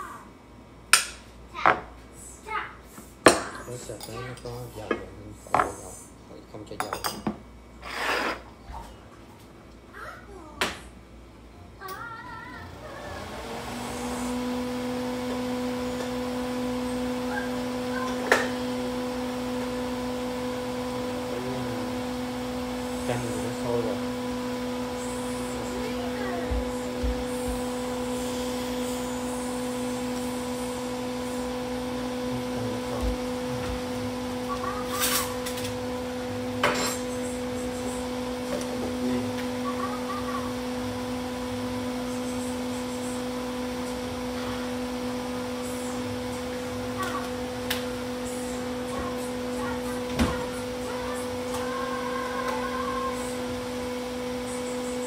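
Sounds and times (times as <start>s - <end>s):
range hood fan motor hum: 0.0s - 55.0s.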